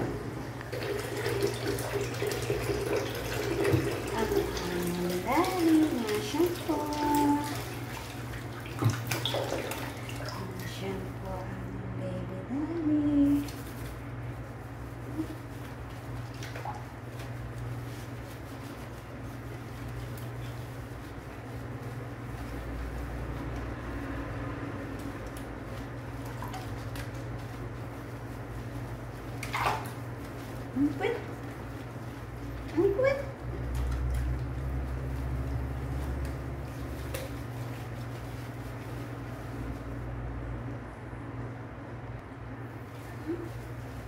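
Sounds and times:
water sloshing in a basin: 0:00.0 - 0:40.8
faucet water running into sink: 0:00.6 - 0:10.9.

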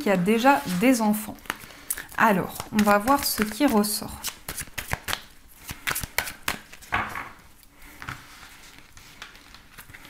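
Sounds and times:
cards being shuffled: 0:00.6 - 0:07.0.

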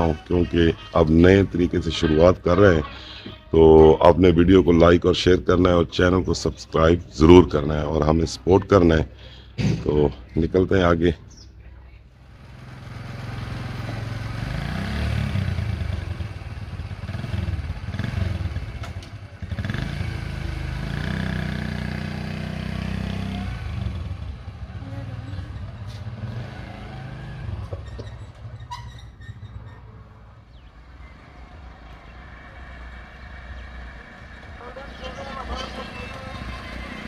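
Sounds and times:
motorcycle engine revving: 0:12.2 - 0:37.0.

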